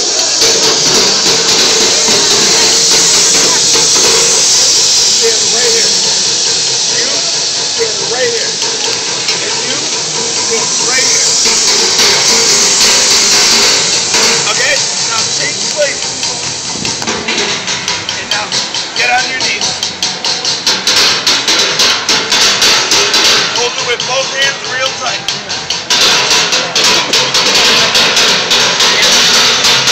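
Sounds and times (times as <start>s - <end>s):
crowd noise: 0.0s - 29.9s
voices: 0.5s - 21.3s, 23.1s - 29.6s.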